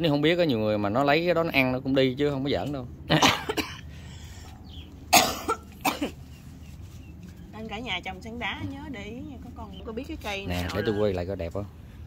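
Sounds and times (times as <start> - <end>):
person coughing: 3.1 - 3.9, 5.1 - 6.2.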